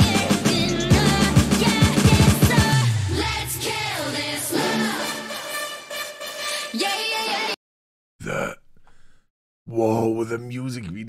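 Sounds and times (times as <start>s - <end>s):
man's throaty grunt: 8.2s - 9.0s
faint breathy noise: 8.8s - 9.3s.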